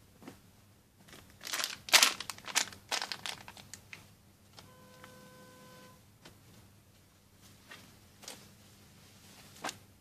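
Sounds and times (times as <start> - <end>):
plastic bag crinkling: 1.1 - 4.0
faint steady tone: 4.5 - 6.1.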